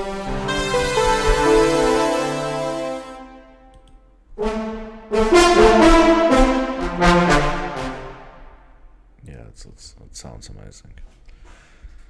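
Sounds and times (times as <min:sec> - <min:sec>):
brass ensemble chords: 0:00.0 - 0:09.0.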